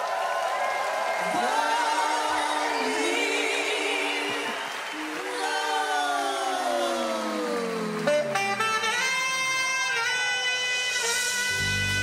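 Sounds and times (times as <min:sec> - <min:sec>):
saxophone playing: 0:07.5 - 0:12.0.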